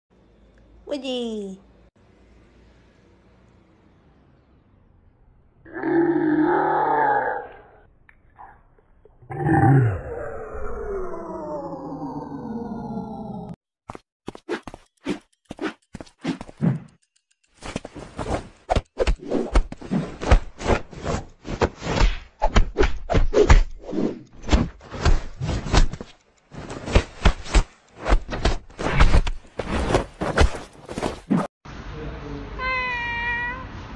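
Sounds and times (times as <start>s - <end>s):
low growling vocal sound: 5.7s - 8.6s, 9.2s - 13.6s.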